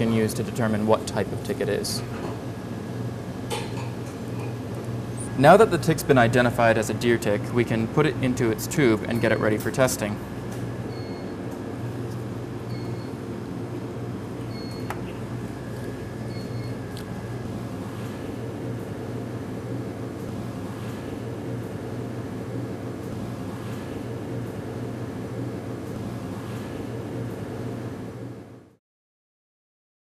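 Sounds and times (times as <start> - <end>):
equipment and ventilation hum: 0.0 - 28.8.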